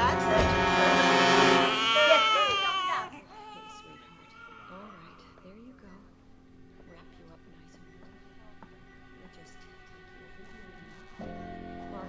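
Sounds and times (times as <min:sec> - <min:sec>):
high-pitched human cry: 0:01.6 - 0:04.8.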